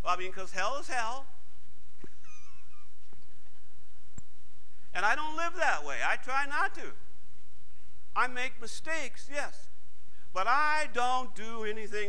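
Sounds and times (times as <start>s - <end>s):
steady low hum: 0.0s - 12.0s
high wavering squeak: 2.1s - 3.0s
soft clicks: 4.1s - 4.3s.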